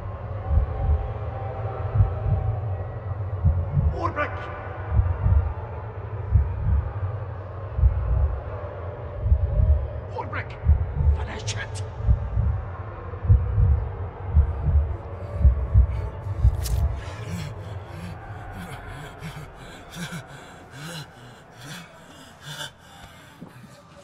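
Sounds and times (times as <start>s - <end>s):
slow heartbeat thumps: 0.4s - 1.2s, 1.8s - 2.7s, 3.3s - 4.0s, 4.8s - 5.6s, 6.2s - 7.0s, 7.7s - 10.0s, 10.6s - 23.6s
sharp gasping breaths: 15.2s - 24.0s.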